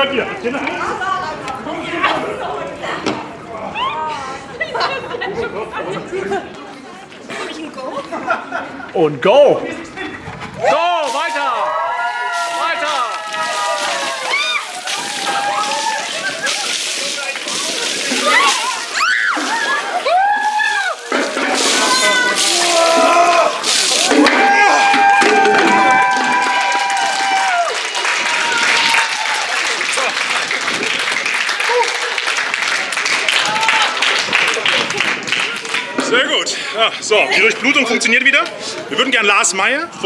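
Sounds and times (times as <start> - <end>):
people shrieking and yelling: 3.6 - 4.4, 10.6 - 17.0, 17.8 - 29.5
ice water splashing: 10.7 - 26.6.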